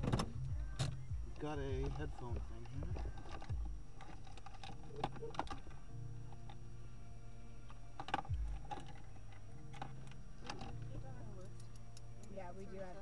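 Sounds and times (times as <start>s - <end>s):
car engine idling: 0.0s - 12.6s.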